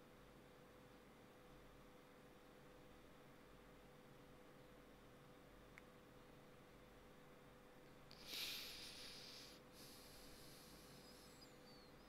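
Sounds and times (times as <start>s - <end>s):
person sniffing or exhaling: 8.1s - 11.4s
faint high chirps: 10.6s - 12.0s.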